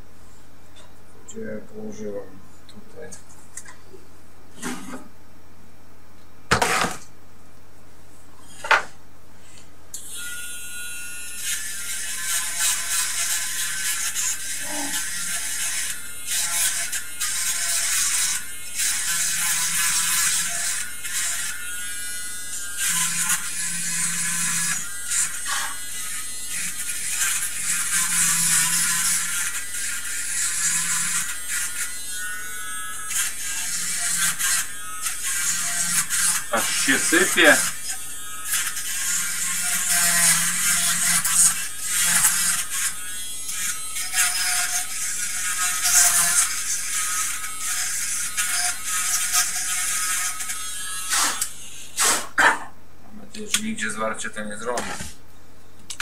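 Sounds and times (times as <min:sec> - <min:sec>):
electric tool buzzing and scraping: 0:04.5 - 0:05.1, 0:06.5 - 0:07.1, 0:08.4 - 0:52.7, 0:54.6 - 0:55.2.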